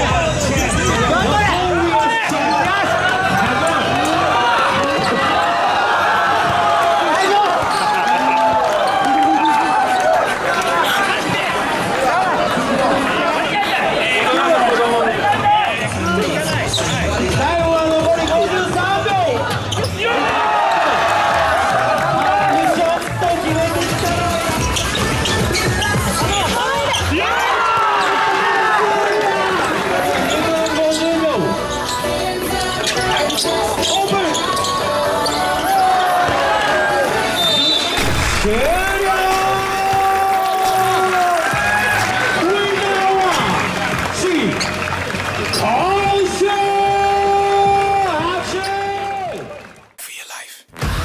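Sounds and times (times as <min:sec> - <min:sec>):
music: 0:00.0 - 0:06.9, 0:15.2 - 0:28.8, 0:29.4 - 0:49.8, 0:50.4 - 0:51.0
spectators shouting and talking: 0:00.0 - 0:49.7.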